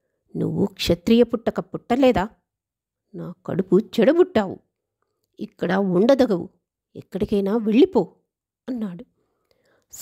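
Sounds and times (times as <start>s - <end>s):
person reading aloud: 0.3s - 2.4s, 3.2s - 4.7s, 5.4s - 9.1s
faint breath: 9.2s - 10.0s.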